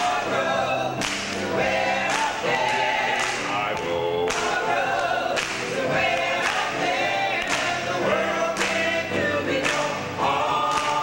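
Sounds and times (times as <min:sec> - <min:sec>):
choir singing in harmony: 0:00.0 - 0:11.0
sharp claps: 0:01.0 - 0:01.5, 0:03.1 - 0:06.7, 0:07.4 - 0:07.8, 0:08.6 - 0:08.9, 0:09.6 - 0:10.0, 0:10.7 - 0:11.0.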